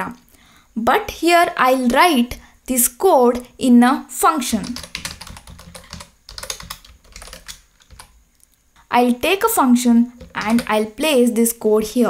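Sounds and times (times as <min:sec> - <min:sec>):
typing on computer keyboard: 0:04.6 - 0:08.2, 0:10.2 - 0:10.7.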